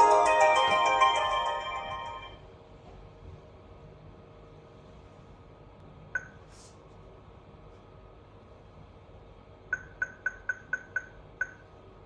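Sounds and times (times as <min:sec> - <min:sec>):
electronic ringtone melody: 0:00.0 - 0:02.4.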